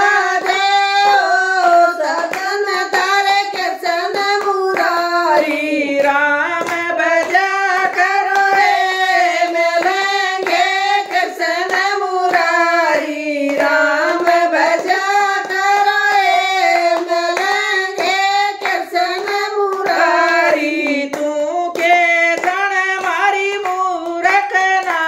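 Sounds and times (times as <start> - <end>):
hand claps: 0.0 - 25.0
women singing devotional song: 0.0 - 25.0.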